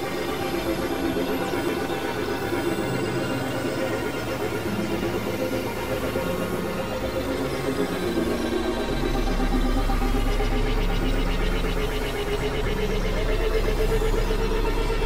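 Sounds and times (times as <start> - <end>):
layered synthesizer drones: 0.0 - 15.0
deep bass drone: 4.6 - 15.0.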